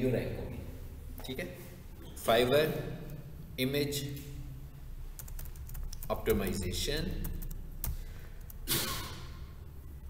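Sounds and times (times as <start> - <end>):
typing on computer keyboard: 5.2 - 6.6, 7.2 - 8.6.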